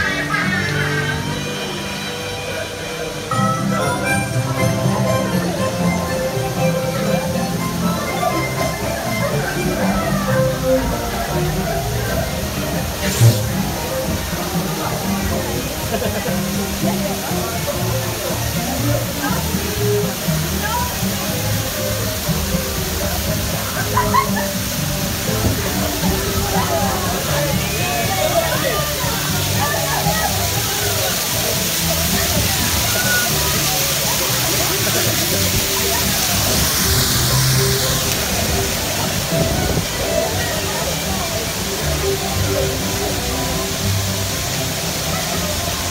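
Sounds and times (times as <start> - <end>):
music with voices: 0.0 - 45.9
rushing hiss of falling water: 0.0 - 45.9.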